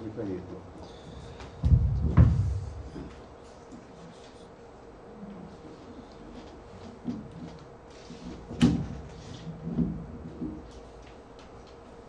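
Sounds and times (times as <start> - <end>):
dull thumps on lectern microphone: 1.6 - 3.2.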